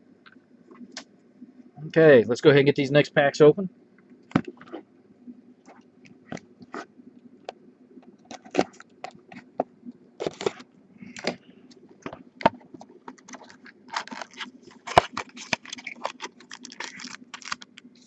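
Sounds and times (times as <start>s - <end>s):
cardboard and foil crinkling: 10.2s - 11.4s, 12.5s - 18.0s.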